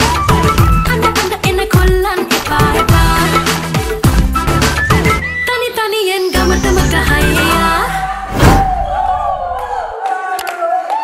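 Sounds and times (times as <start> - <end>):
song beat and bass: 0.0 - 5.2, 6.3 - 8.0
crowd-like backing vocals: 6.3 - 10.4.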